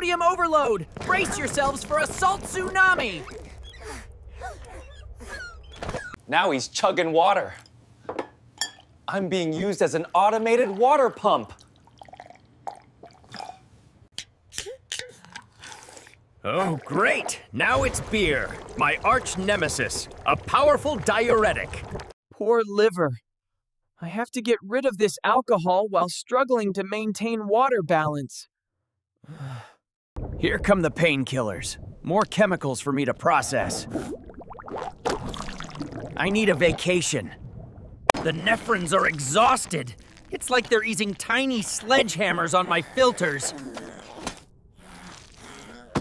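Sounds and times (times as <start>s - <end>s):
water splashing and gushing: 0.8s - 3.7s, 9.9s - 12.4s, 16.5s - 22.2s, 33.3s - 43.4s
person gulping water: 11.5s - 13.7s, 14.7s - 22.1s, 33.8s - 36.8s, 37.4s - 40.8s, 43.3s - 46.0s
rising bubbly notes: 17.7s - 22.1s, 33.8s - 38.2s.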